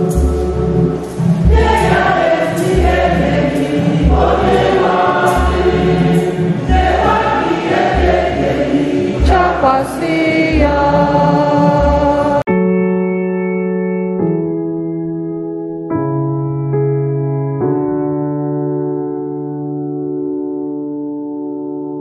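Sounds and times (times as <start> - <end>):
heavy bass beat: 0.0 - 9.9
choir singing gospel song: 0.0 - 12.5
soft electric piano music: 11.7 - 22.0.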